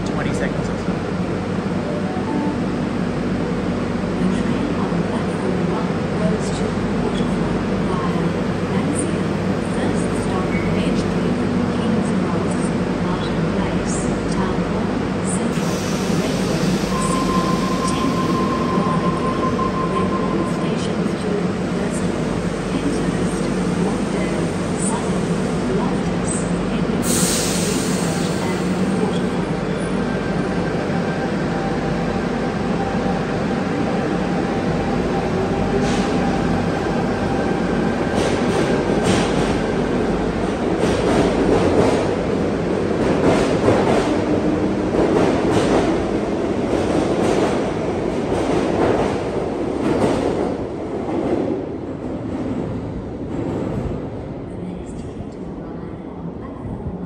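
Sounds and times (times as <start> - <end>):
train equipment humming: 0.0 - 50.2
train door hiss: 15.6 - 18.3, 27.0 - 28.8.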